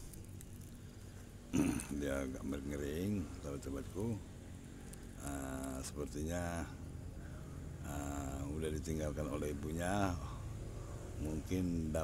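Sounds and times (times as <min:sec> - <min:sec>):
faint background noise: 0:00.0 - 0:12.0
man speaking: 0:01.7 - 0:04.2, 0:05.2 - 0:06.8, 0:07.9 - 0:10.4.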